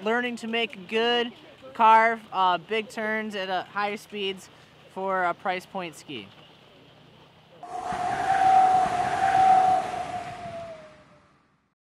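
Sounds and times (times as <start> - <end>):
rushing noise with whistling tone: 7.6 - 11.4.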